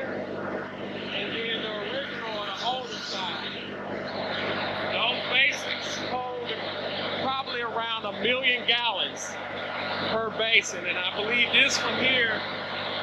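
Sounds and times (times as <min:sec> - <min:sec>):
indistinct talking: 0:00.0 - 0:13.0
low mechanical hum: 0:00.0 - 0:13.0.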